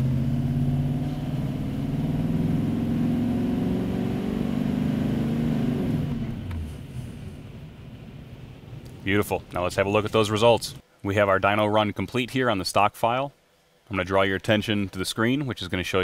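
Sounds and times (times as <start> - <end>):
diesel engine under full load: 0.0 - 9.6.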